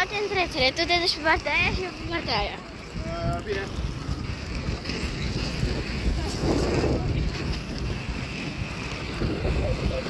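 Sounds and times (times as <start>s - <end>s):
wind buffeting microphone: 0.0s - 10.0s.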